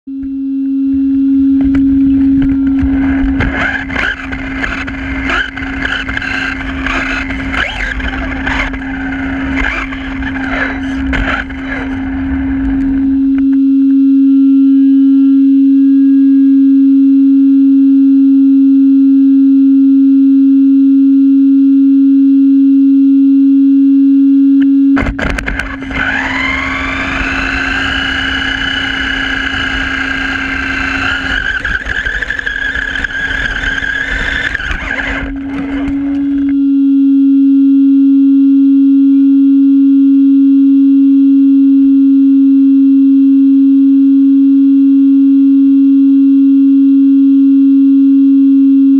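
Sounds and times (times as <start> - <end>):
loud steady electronic tone: 0.1 - 48.9
rc car motor whine: 0.6 - 13.9, 25.0 - 36.8.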